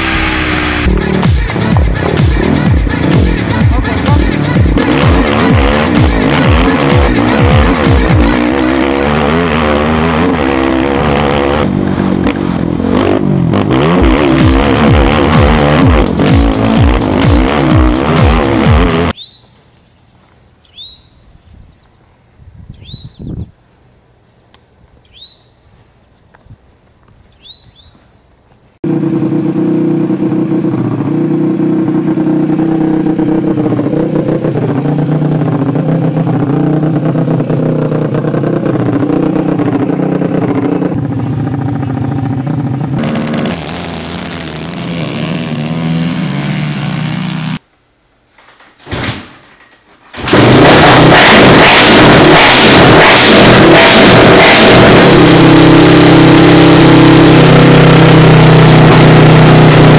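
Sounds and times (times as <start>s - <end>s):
engine running steadily: 0.0s - 19.2s, 28.5s - 47.6s, 50.2s - 59.9s
loud distorted engine revving: 0.0s - 19.2s, 28.8s - 47.6s, 50.2s - 59.9s.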